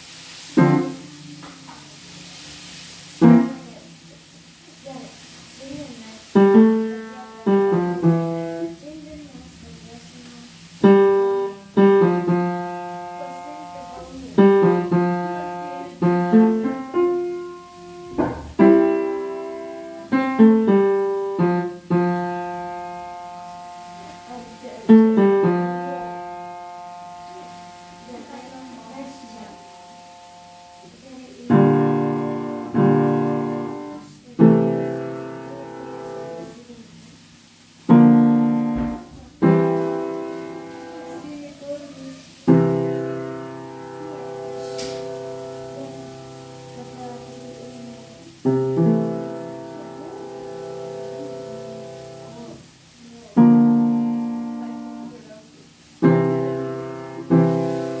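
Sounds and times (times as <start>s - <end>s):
slow piano chords: 0.0s - 58.0s.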